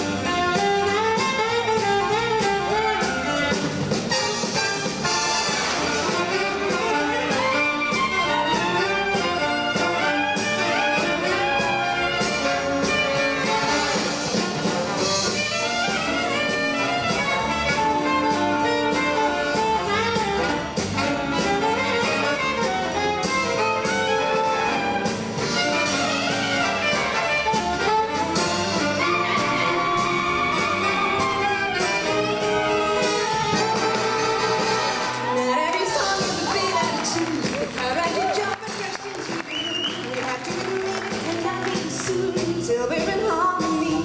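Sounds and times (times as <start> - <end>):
alto saxophone solo: 0.0 - 37.2
big band playing: 0.0 - 44.0.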